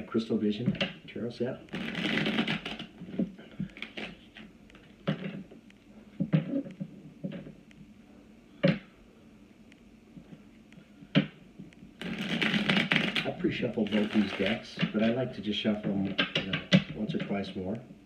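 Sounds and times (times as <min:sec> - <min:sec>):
cards shuffling: 0:01.7 - 0:04.4, 0:12.0 - 0:15.2.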